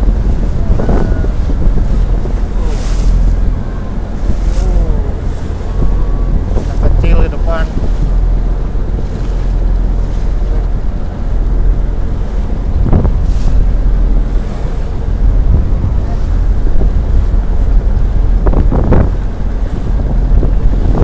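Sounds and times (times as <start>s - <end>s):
boat engine droning: 0.0s - 21.0s
waves splashing against hull: 0.0s - 21.0s
wind buffeting microphone: 0.0s - 21.0s.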